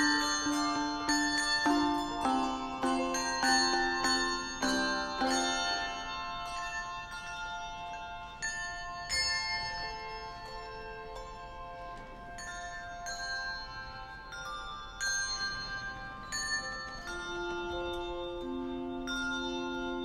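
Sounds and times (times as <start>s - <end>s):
handbell choir ringing: 0.0s - 20.0s.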